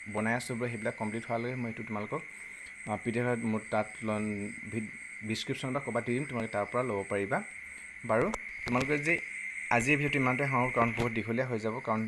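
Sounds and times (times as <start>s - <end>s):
faint high-pitched whine: 0.0s - 12.0s
man speaking: 2.9s - 12.0s.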